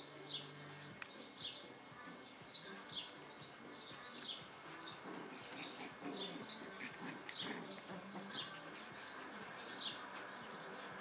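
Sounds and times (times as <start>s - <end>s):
small birds chirping: 0.0s - 11.0s
puppies growling: 4.4s - 11.0s.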